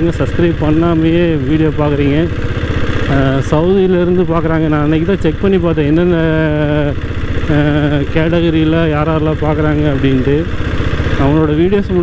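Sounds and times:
diesel motorcycle engine running: 0.0s - 12.0s.

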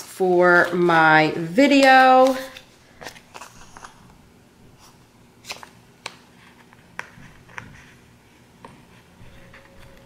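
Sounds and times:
paper crinkling and tapping: 0.0s - 4.2s, 5.4s - 8.0s.

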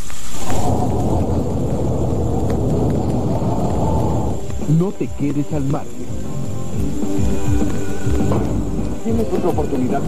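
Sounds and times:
loud low rumble: 0.4s - 6.9s.

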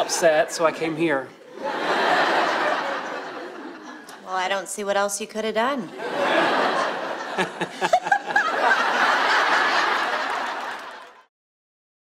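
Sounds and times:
crowd laughing: 0.0s - 4.2s, 5.9s - 11.3s
woman laughing: 7.4s - 8.8s.

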